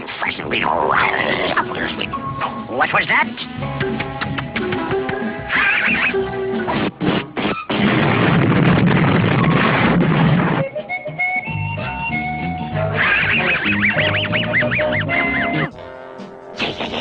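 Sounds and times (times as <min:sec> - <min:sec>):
cartoon music: 0:00.9 - 0:06.7, 0:10.6 - 0:17.0
cartoon explosion blast: 0:06.8 - 0:10.6, 0:16.6 - 0:17.0
cartoon dog wheezing snicker: 0:16.6 - 0:17.0.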